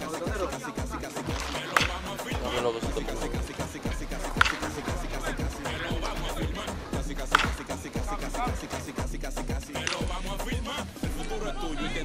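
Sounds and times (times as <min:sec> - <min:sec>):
music with fast bass beat: 0:00.0 - 0:12.0
baseball bat cracking ball: 0:01.2 - 0:10.4.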